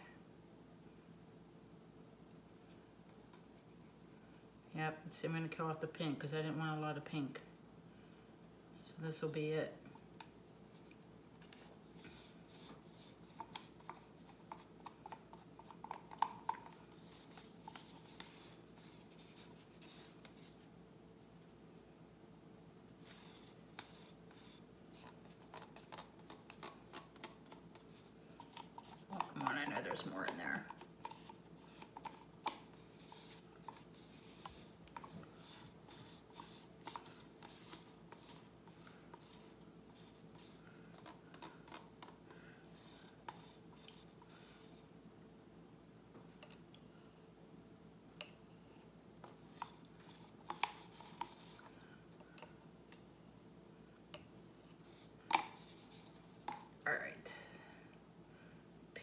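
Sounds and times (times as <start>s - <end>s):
plastic cups clicking and tapping: 13.2s - 20.4s, 23.0s - 44.1s, 55.2s - 56.8s.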